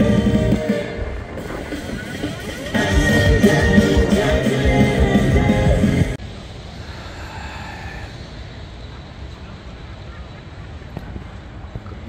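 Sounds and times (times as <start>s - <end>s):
background music: 0.0s - 6.2s
low outdoor rumble: 0.0s - 12.0s.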